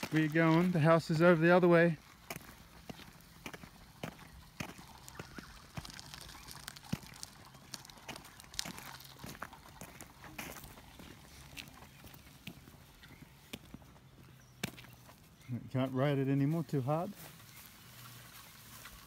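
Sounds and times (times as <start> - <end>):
footfalls on grass and gravel: 0.0 - 15.3, 16.4 - 19.0.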